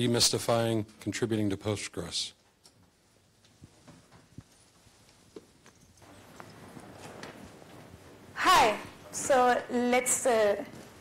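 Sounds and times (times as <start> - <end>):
soft rustle: 2.7 - 8.3.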